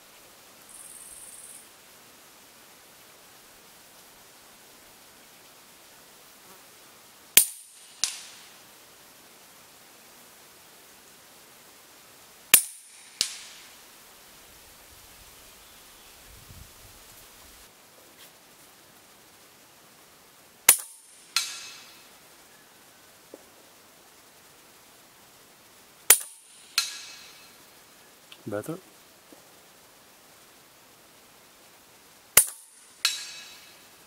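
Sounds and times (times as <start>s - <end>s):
fainter crack with ringing tail: 7.4s - 8.5s, 12.5s - 13.7s, 20.7s - 22.0s, 26.1s - 27.6s, 32.4s - 33.8s.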